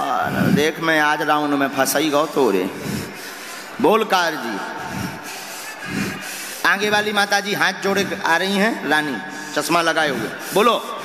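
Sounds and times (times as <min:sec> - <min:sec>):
man speaking loudly: 0:00.0 - 0:02.9, 0:03.7 - 0:04.8, 0:06.6 - 0:11.0.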